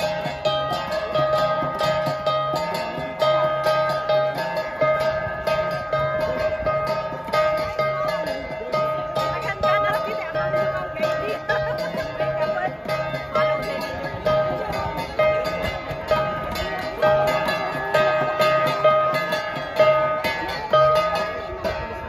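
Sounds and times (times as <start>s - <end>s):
flat gongs struck in rhythm: 0.0s - 22.0s.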